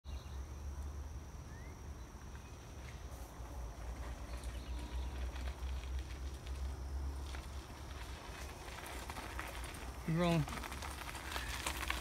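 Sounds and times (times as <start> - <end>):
bike tyres crunching on dirt: 2.1 - 12.0.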